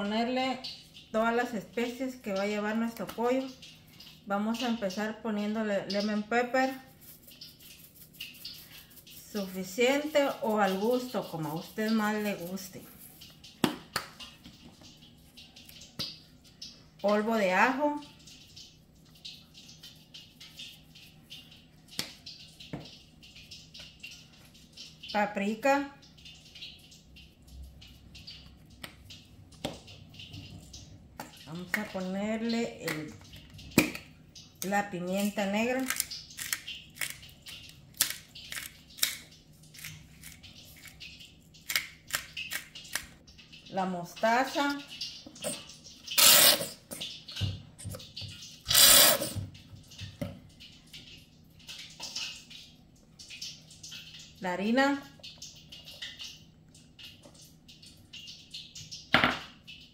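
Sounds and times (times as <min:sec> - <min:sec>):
spice shaker shaking: 0:06.8 - 0:13.2
squeeze bottle squirting sauce: 0:45.4 - 0:47.2, 0:48.0 - 0:49.4.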